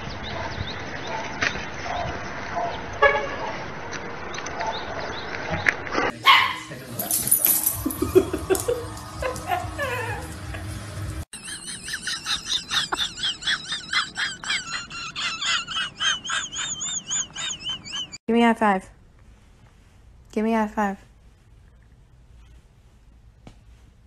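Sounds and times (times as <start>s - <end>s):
dogs barking: 0.2s - 5.1s, 6.1s - 6.8s, 8.0s - 10.6s
dogs whining: 7.6s - 10.7s, 11.4s - 18.2s
dogs high-pitched cries: 9.2s - 10.4s.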